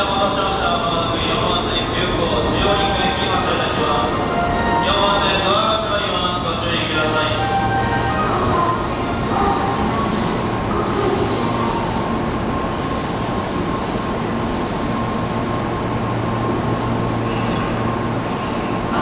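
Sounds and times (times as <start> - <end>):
electric train humming and whirring: 0.0 - 19.0.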